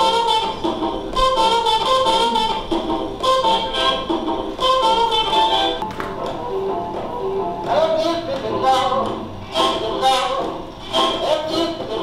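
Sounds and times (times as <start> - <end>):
horn music on gramophone: 0.0 - 5.8, 7.7 - 12.0.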